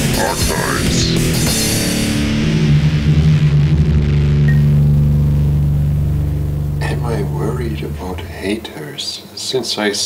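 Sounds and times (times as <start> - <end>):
drums: 0.0 - 8.0
heavy metal guitar chord ringing: 0.0 - 8.6.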